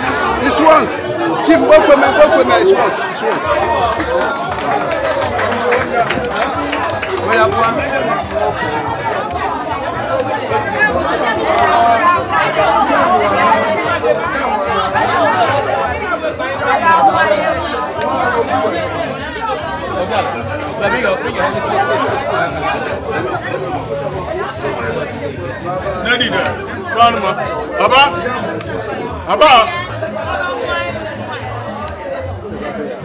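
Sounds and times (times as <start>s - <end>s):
people talking over one another: 0.0s - 33.0s.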